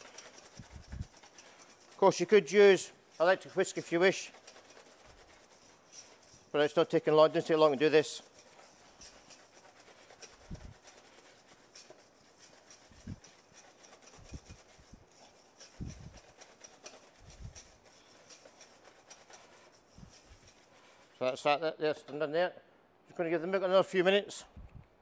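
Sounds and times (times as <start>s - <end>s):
wire whisk scraping metal bowl: 0.0s - 21.5s.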